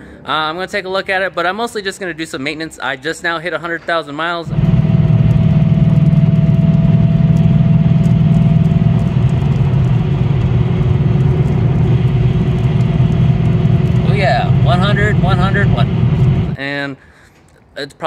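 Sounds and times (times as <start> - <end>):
car engine drone from inside cabin: 4.5 - 16.6
road and tyre noise: 4.5 - 16.6
man speaking: 14.0 - 16.0.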